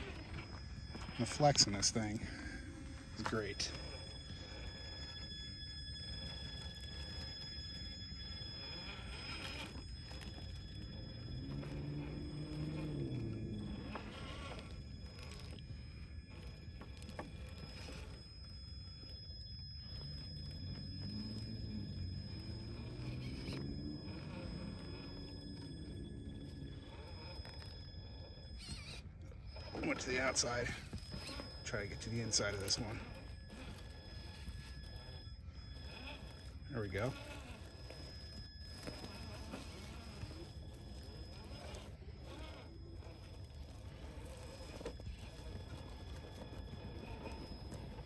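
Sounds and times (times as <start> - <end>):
toy car motor whining: 0.0 - 48.0.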